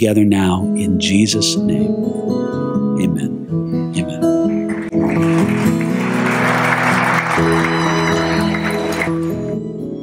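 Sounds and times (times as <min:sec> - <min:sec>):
acoustic guitar music: 0:00.0 - 0:10.0
audience applauding: 0:04.7 - 0:09.6.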